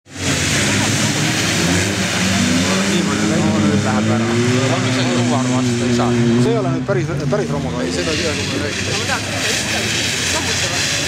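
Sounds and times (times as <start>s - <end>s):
rally car engines running hard: 0.0s - 11.0s
loud rushing noise: 0.1s - 11.0s
voices talking: 0.3s - 11.0s.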